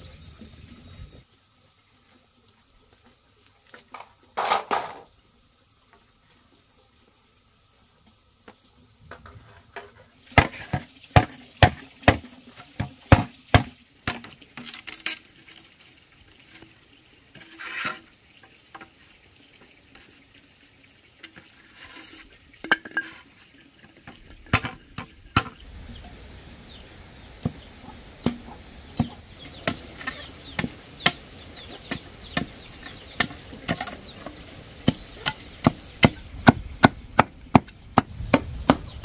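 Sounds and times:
machete chopping bamboo: 0:10.3 - 0:14.3, 0:28.2 - 0:31.2, 0:31.8 - 0:34.0, 0:34.8 - 0:38.9.

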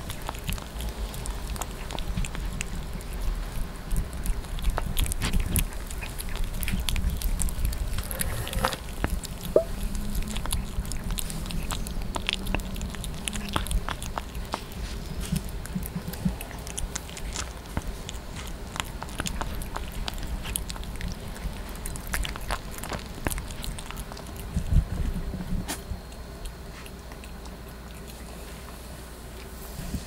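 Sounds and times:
small irregular clicks: 0:00.0 - 0:24.8
puppy chewing wet meat: 0:00.0 - 0:30.0.

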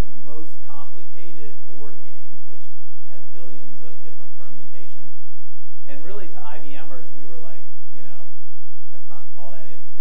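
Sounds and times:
man giving a presentation: 0:00.0 - 0:08.4, 0:09.0 - 0:10.0.

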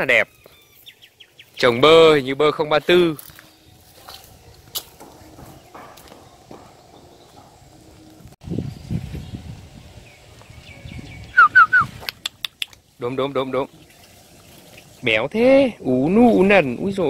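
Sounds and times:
low scuffing noises: 0:00.4 - 0:08.4.

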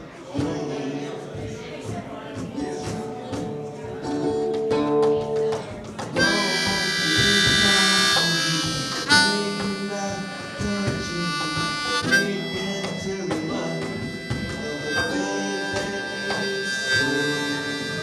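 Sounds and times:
harmonica solo: 0:06.2 - 0:18.0.

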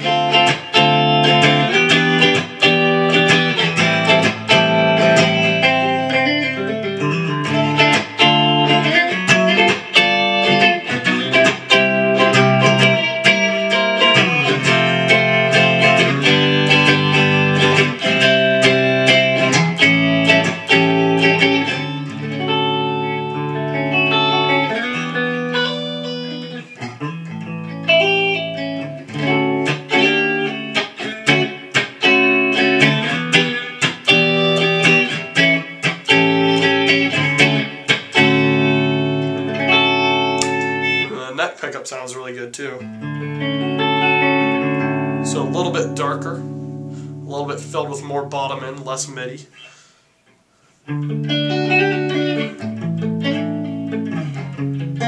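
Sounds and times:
clean electric guitar chords: 0:00.0 - 0:41.3, 0:42.8 - 0:49.5, 0:50.9 - 0:55.0.

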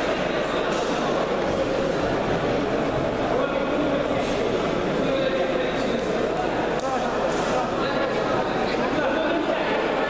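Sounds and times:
hubbub of voices in a hall: 0:00.0 - 0:10.0.

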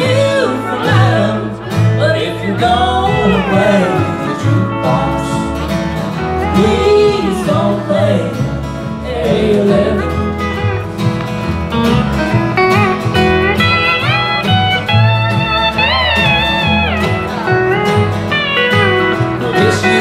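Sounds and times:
acoustic guitar: 0:00.0 - 0:20.0
steel guitar: 0:00.0 - 0:20.0
upright bass: 0:00.0 - 0:20.0
fiddle: 0:09.9 - 0:20.0.

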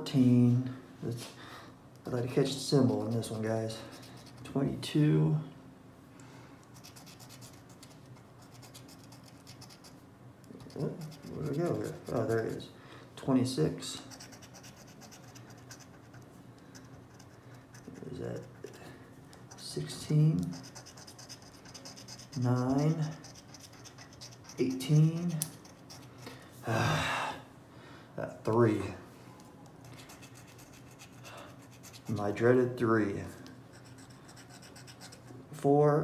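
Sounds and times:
scratching paper lottery ticket: 0:06.8 - 0:12.6, 0:14.1 - 0:18.8, 0:19.5 - 0:26.1, 0:29.9 - 0:32.2
scratch card being scraped: 0:20.4 - 0:26.1.

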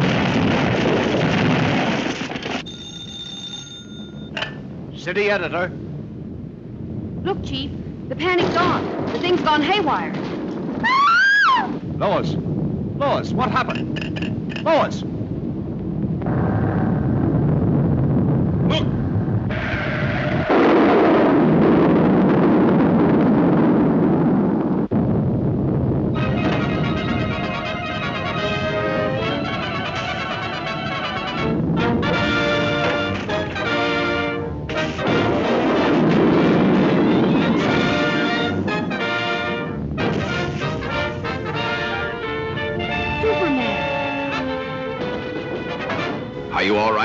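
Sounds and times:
explosion: 0:00.0 - 0:02.7, 0:04.5 - 0:46.4
telephone bell ringing: 0:02.6 - 0:04.4
rumbling roar: 0:15.3 - 0:45.0
orchestral music: 0:26.2 - 0:36.0, 0:36.8 - 0:47.0.

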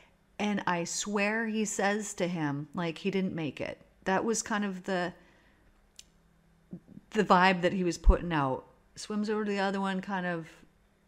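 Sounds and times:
woman speaking: 0:00.0 - 0:05.2, 0:06.7 - 0:10.7.

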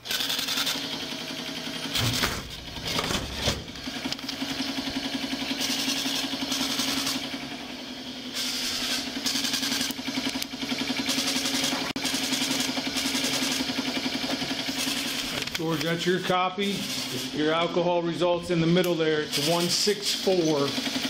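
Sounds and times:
printer mechanical chatter: 0:00.0 - 0:07.5, 0:08.3 - 0:17.8, 0:18.6 - 0:21.0
printer motor hum: 0:00.0 - 0:15.9.

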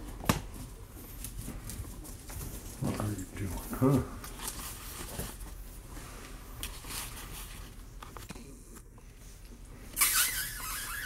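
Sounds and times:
puppies scraping and rustling on carpet: 0:00.5 - 0:08.2.

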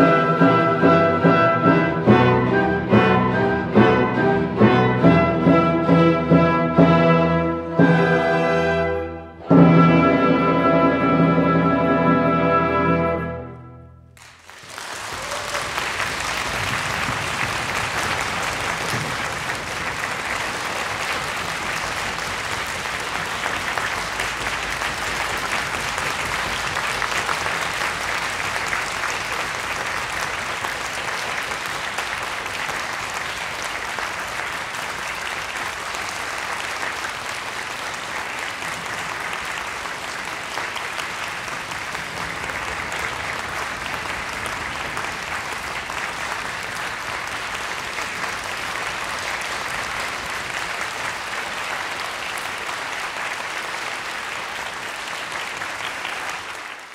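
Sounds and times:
audience applauding: 0:14.2 - 0:56.9.

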